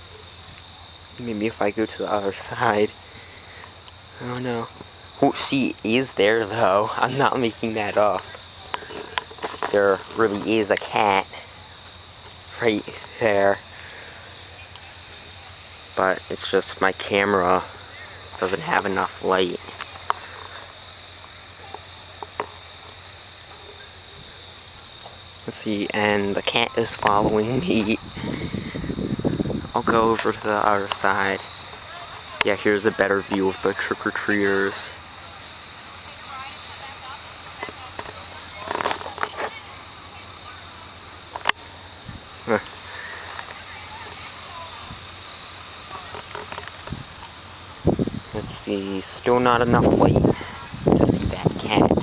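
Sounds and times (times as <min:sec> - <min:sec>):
high-pitched whine: 0:00.0 - 0:35.8
distant voices: 0:00.0 - 0:52.0.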